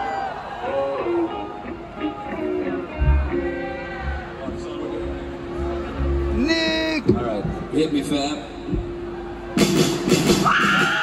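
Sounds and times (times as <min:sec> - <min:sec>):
rock band playing loudly: 0:00.6 - 0:07.2, 0:08.8 - 0:11.0
man speaking into a microphone: 0:06.4 - 0:08.6.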